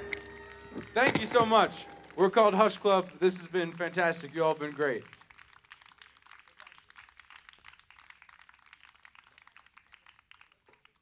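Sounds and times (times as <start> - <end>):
audience clapping: 0.0 - 11.0.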